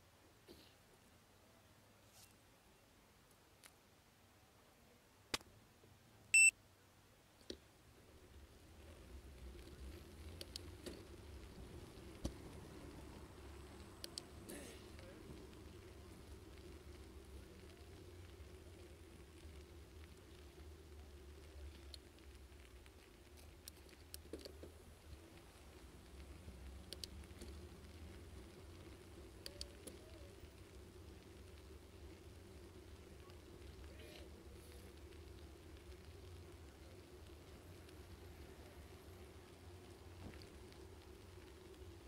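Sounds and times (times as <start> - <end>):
faint low hum: 0.0 - 42.0
light ticks: 9.6 - 11.6, 12.2 - 38.5.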